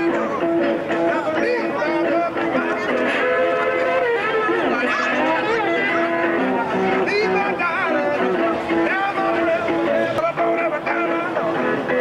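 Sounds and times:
slide steel guitar blues: 0.0 - 12.0.

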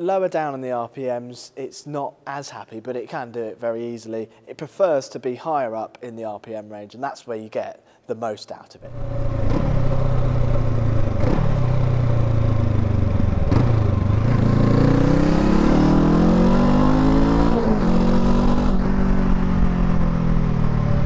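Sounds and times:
motorcycle engine accelerating: 8.8 - 21.0.

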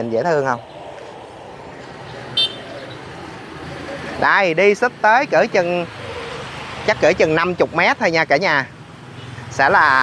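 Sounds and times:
motorbikes and cars passing: 0.0 - 10.0.

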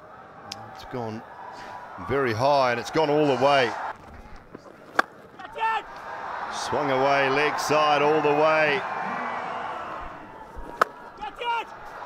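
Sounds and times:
stadium crowd noise: 0.0 - 12.0
cricket bat striking ball: 10.6 - 11.1.

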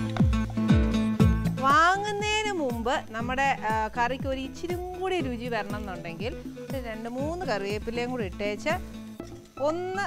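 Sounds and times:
background music with low drone: 0.0 - 10.0.

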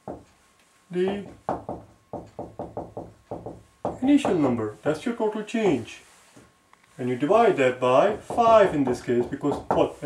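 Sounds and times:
marker tapping on whiteboard: 0.0 - 0.3, 1.0 - 4.5, 8.1 - 10.0.

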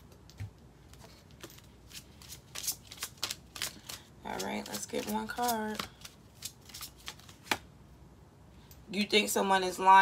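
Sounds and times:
playing cards flicking and tapping: 1.0 - 7.7.

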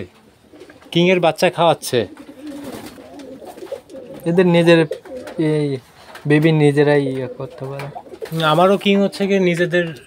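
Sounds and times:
pigeons cooing: 0.2 - 6.1, 7.0 - 8.6.

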